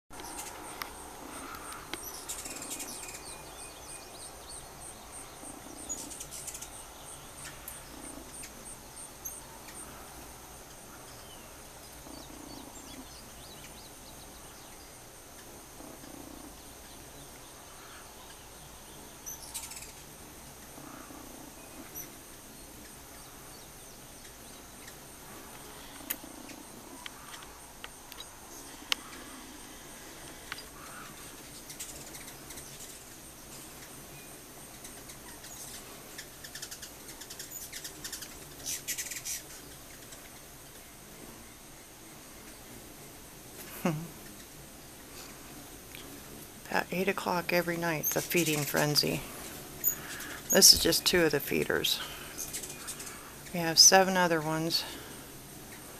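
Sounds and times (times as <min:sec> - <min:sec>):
birds chirping: 0:00.1 - 0:55.9.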